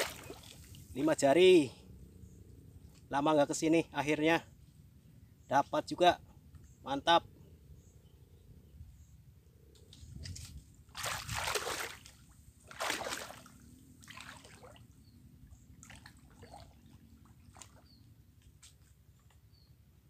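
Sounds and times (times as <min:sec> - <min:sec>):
water sloshing from wading: 0:00.0 - 0:01.0, 0:10.3 - 0:19.0.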